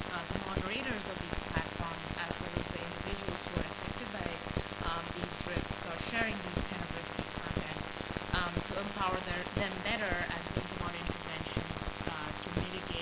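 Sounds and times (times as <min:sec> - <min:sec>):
dense crackle noise: 0:00.0 - 0:13.0.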